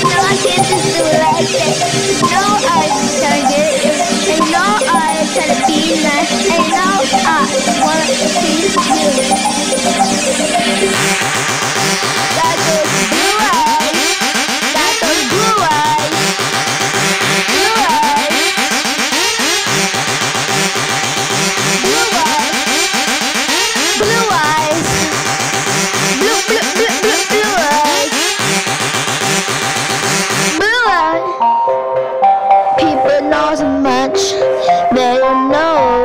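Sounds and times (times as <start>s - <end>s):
rising synth sweep: 0.0s - 30.6s
growling synth bass: 0.0s - 31.2s
steady electronic beat: 0.0s - 36.0s.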